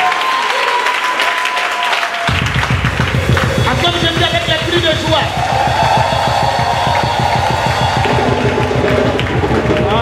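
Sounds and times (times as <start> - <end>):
fast steady drum beat: 2.3 - 10.0.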